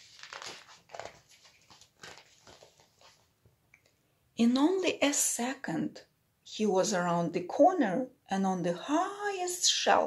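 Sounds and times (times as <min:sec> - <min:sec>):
book pages turning: 0:00.0 - 0:03.4.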